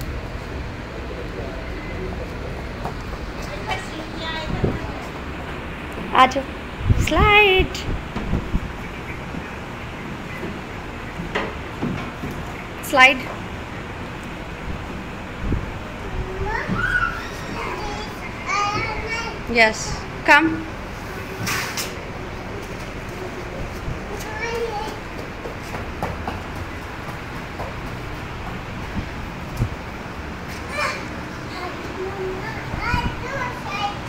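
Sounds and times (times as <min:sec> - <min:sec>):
indoor play area rumble: 0:00.0 - 0:34.0
young children chattering: 0:01.0 - 0:07.9, 0:15.8 - 0:21.4, 0:22.1 - 0:25.4, 0:30.5 - 0:34.0
child making high calls: 0:16.2 - 0:19.4, 0:30.7 - 0:34.0.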